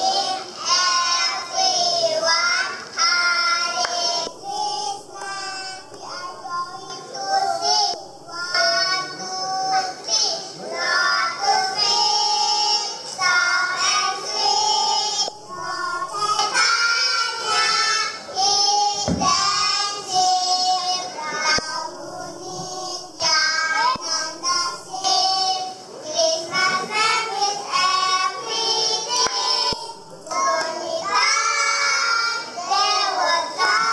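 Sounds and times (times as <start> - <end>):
children singing: 0.0 - 33.9.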